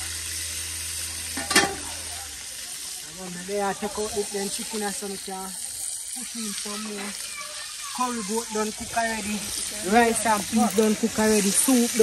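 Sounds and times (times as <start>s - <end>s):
chicken sizzling in hot oil: 0.0s - 12.0s.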